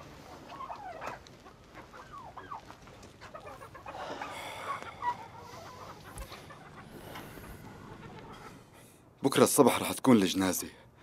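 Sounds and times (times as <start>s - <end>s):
chickens clucking: 0.0s - 9.4s.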